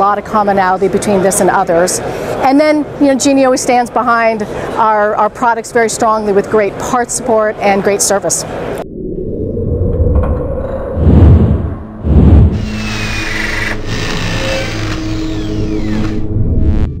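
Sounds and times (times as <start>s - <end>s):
heavy low hits: 8.8s - 17.0s
low rumble: 8.8s - 17.0s
steady drone: 8.8s - 17.0s.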